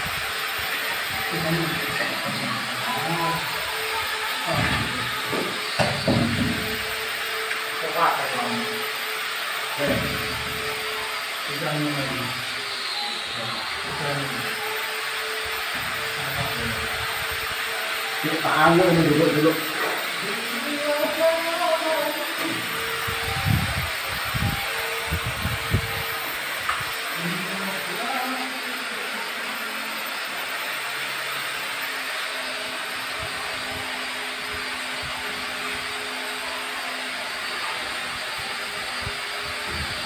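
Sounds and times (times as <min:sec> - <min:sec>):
muffled voices: 0:01.0 - 0:06.8, 0:09.7 - 0:10.6, 0:11.4 - 0:14.6, 0:15.8 - 0:17.4, 0:18.2 - 0:29.8.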